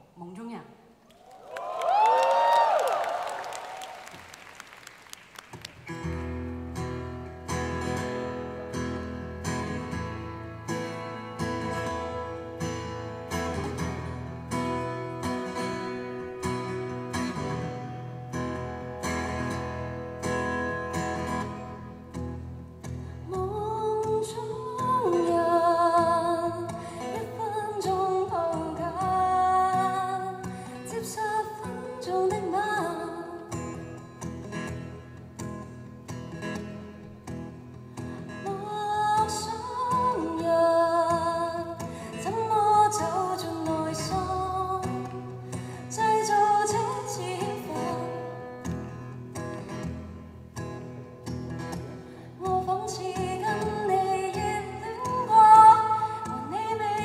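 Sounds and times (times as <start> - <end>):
crowd cheering: 1.1 - 5.9
acoustic guitar strummed: 5.5 - 57.0
woman singing: 23.3 - 33.8, 38.4 - 48.5, 52.4 - 57.0.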